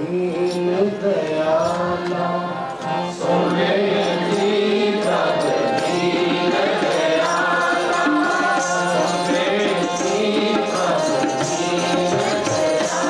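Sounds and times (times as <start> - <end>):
harmonium: 0.0 - 13.0
voices singing a devotional hymn: 0.0 - 13.0.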